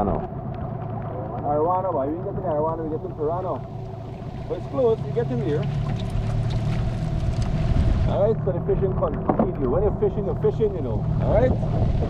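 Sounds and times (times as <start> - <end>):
heavy rain on water: 0.0 - 12.0
steady low hum: 0.0 - 12.0.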